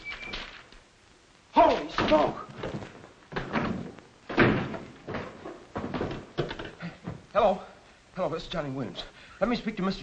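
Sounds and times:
wooden door banging shut: 0:01.8 - 0:07.2.

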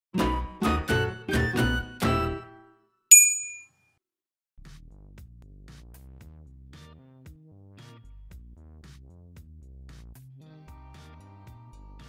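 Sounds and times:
bright high-pitched ding: 0:03.1 - 0:03.6.

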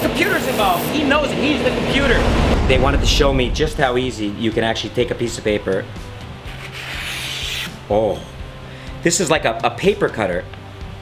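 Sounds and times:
knife slicing paper: 0:06.4 - 0:07.8.

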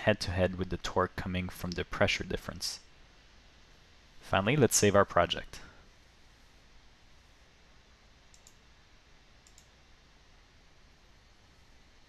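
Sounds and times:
computer mouse double clicks: 0:08.3 - 0:08.6, 0:09.4 - 0:09.7.

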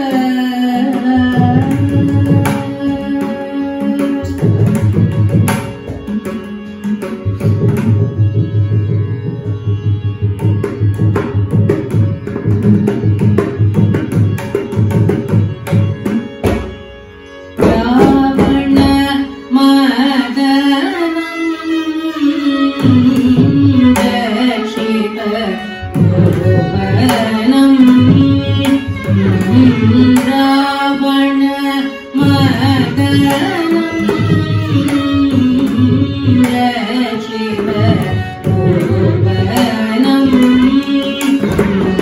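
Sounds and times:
woman singing: 0:00.0 - 0:05.2, 0:17.6 - 0:42.0
violin: 0:00.0 - 0:42.0.

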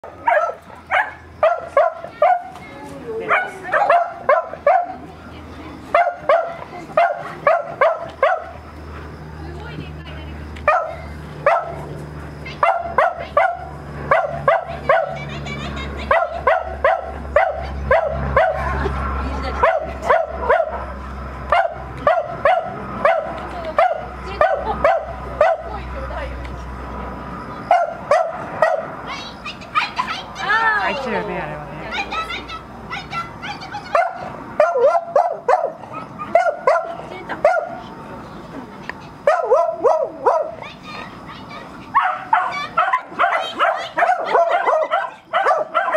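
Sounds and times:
small dog yapping: 0:32.0 - 0:37.8, 0:39.3 - 0:45.9.

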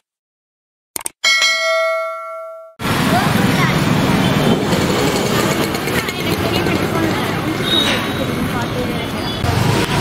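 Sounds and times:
bright bell ding: 0:01.2 - 0:02.8.

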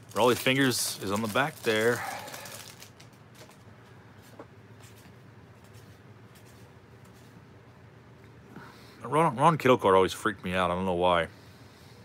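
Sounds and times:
cellophane wrapper crinkling: 0:00.0 - 0:03.7.

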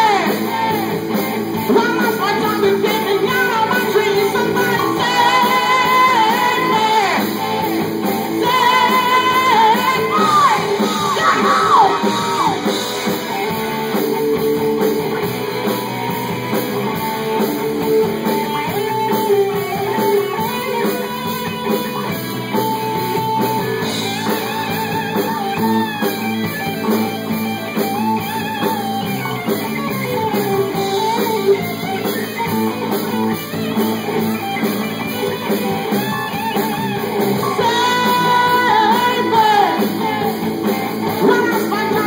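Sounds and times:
electric guitar lead lines: 0:00.0 - 0:42.0
hard rock band playing: 0:00.0 - 0:42.0.

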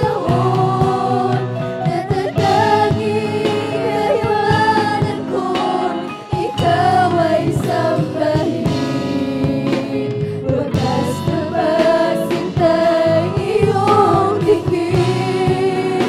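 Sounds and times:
live band with electric bass: 0:00.0 - 0:16.0
women singing worship song: 0:00.0 - 0:16.0.

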